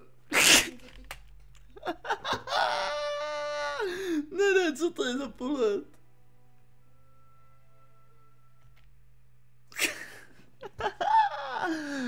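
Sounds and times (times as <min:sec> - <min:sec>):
sneeze-like burst of breath: 0:00.3 - 0:00.9.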